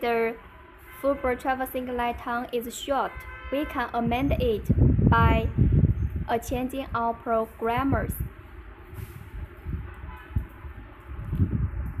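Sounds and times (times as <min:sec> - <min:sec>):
microphone handling rumble: 0:04.0 - 0:06.4, 0:07.7 - 0:12.0.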